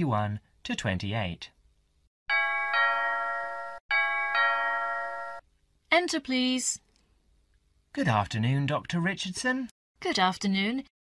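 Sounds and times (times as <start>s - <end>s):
two-note doorbell chime: 2.3s - 5.4s.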